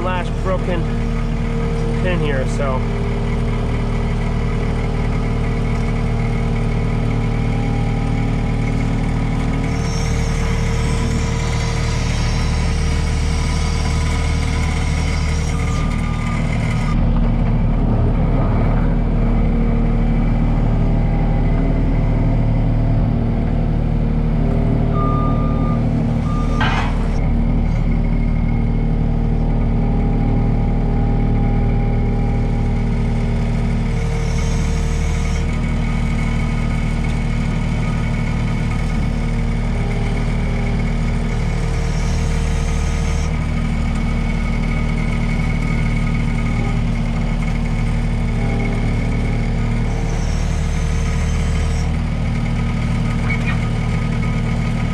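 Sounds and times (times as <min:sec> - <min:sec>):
loader engine running: 0:00.0 - 0:54.9
short beeping tone: 0:24.9 - 0:27.0.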